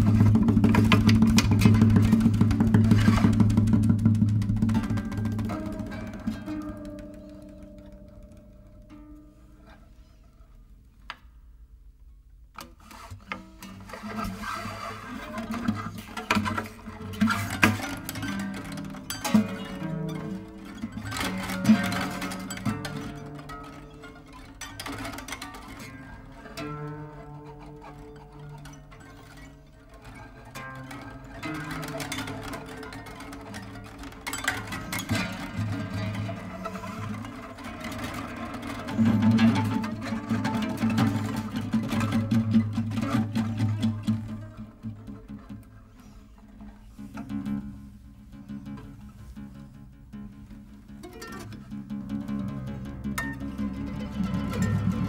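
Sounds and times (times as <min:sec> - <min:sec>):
classical guitar duet: 0:00.0 - 0:55.0.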